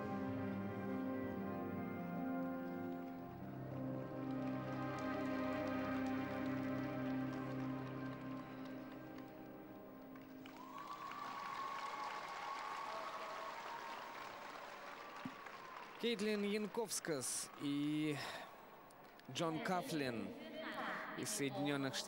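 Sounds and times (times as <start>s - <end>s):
slow tango music: 0.0s - 10.5s
audience applauding: 2.4s - 19.2s.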